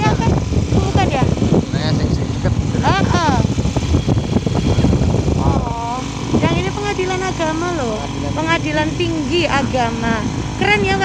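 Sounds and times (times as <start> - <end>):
vehicle engine and road rumble: 0.0 - 11.0.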